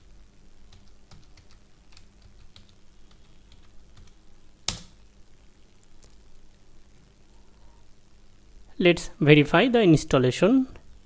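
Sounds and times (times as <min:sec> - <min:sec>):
computer keyboard typing: 0:00.7 - 0:05.0.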